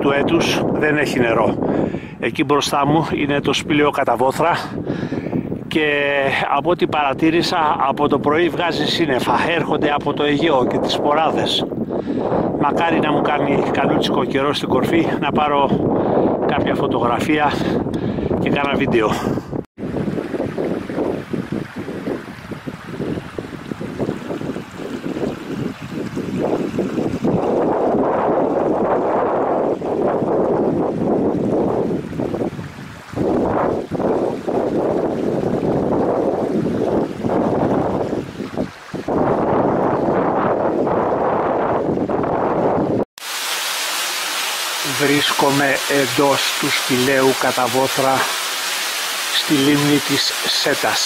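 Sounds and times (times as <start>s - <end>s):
stream rushing over stones: 19.8s - 40.2s, 43.2s - 51.0s.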